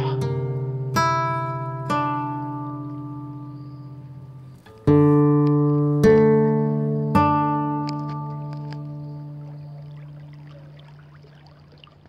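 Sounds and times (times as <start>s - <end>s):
guitar chords ringing: 0.0s - 10.8s.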